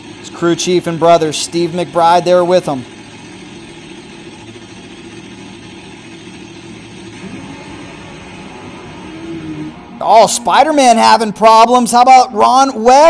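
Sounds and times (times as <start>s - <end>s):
drag motorcycle engines running: 0.0s - 13.0s.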